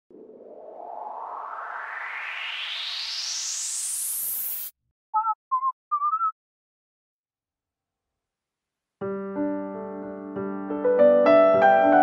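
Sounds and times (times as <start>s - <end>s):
synthesized rising whoosh: 0.1s - 4.7s.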